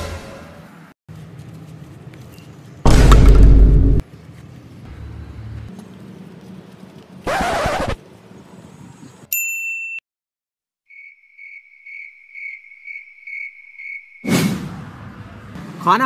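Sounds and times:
cricket chirp sound effect: 0:10.9 - 0:14.3.

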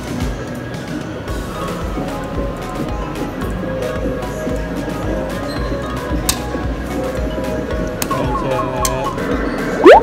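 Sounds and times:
arcade music: 0:01.3 - 0:10.0.

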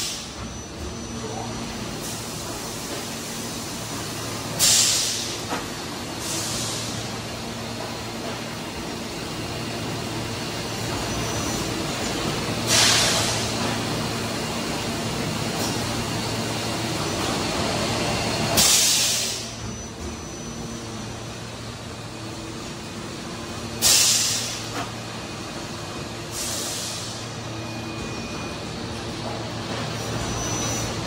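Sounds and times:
compressed-air hiss bursts: 0:04.6 - 0:05.4, 0:06.2 - 0:07.0, 0:12.7 - 0:13.4, 0:18.6 - 0:19.6, 0:23.8 - 0:24.7, 0:26.3 - 0:27.2.

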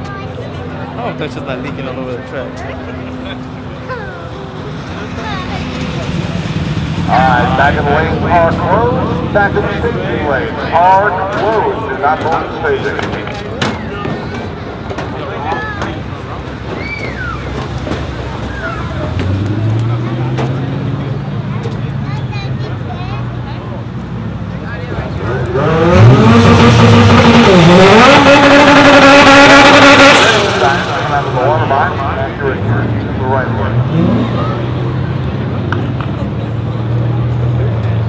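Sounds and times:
car engine idling: 0:00.0 - 0:25.6, 0:26.6 - 0:33.6
faint crowd voices: 0:00.0 - 0:38.0.

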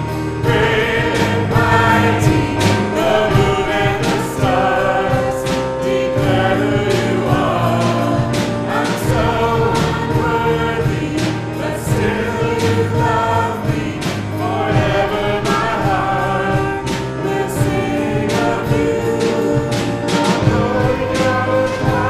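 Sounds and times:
drum kit beat: 0:00.0 - 0:22.0
group singing praise song: 0:00.0 - 0:22.0
keyboard: 0:00.0 - 0:22.0.

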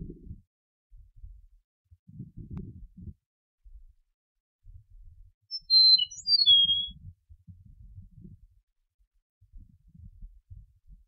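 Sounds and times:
bird singing whistled notes: 0:05.5 - 0:07.0.

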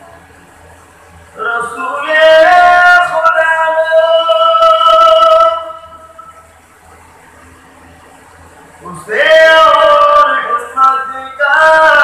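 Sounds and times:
sound system hum: 0:00.0 - 0:12.0
man singing through loudspeakers: 0:01.4 - 0:06.4, 0:08.8 - 0:12.0.

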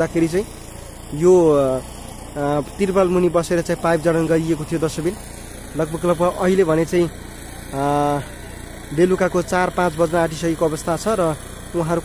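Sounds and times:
man talking: 0:00.0 - 0:00.5, 0:01.1 - 0:05.2, 0:05.8 - 0:08.3, 0:08.9 - 0:12.0
faint low engine hum: 0:00.0 - 0:12.0.

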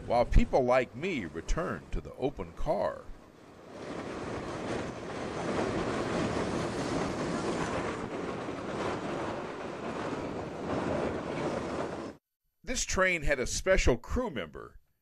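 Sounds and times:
train coaches rolling on track: 0:00.0 - 0:12.2
wind blowing across microphone: 0:02.2 - 0:12.1.

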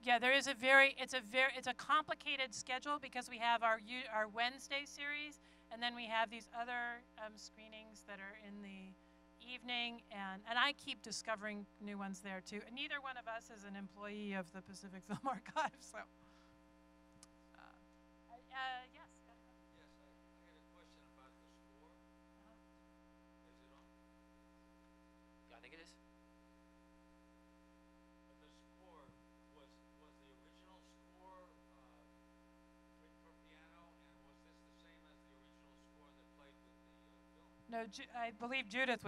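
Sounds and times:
electrical mains hum: 0:00.0 - 0:39.0.

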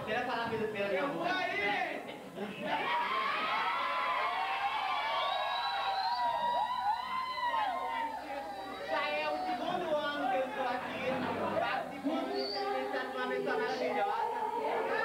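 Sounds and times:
overlapping chatter: 0:01.6 - 0:15.0.

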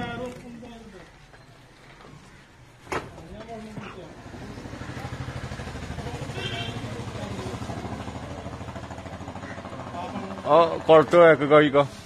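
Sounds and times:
small engine idling: 0:04.1 - 0:11.4.

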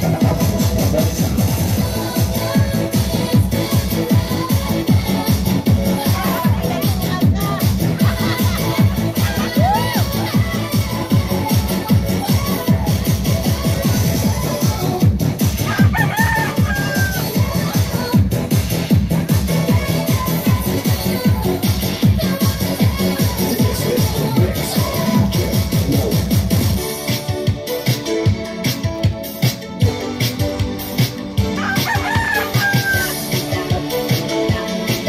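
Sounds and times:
electronic dance music: 0:00.0 - 0:35.0
rooster crowing: 0:15.7 - 0:17.4, 0:31.6 - 0:33.2.

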